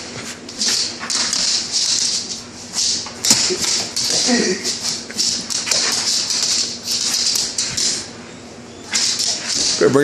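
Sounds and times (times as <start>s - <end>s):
broom bristles rattling: 0.6s - 8.2s, 8.9s - 10.0s.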